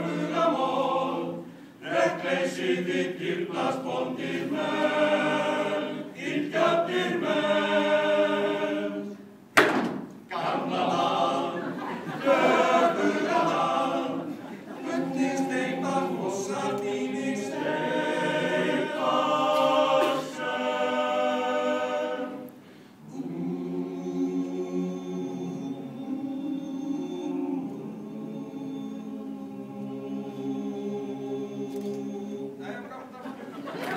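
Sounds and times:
men's choir singing a cappella: 0:00.0 - 0:09.3, 0:10.3 - 0:32.7.

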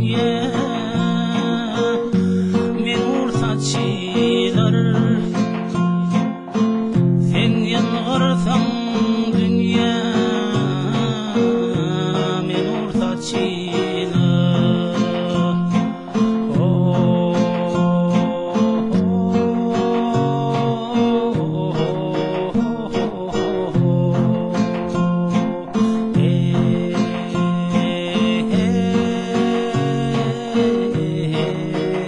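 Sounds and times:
acoustic guitars playing: 0:00.0 - 0:32.0.

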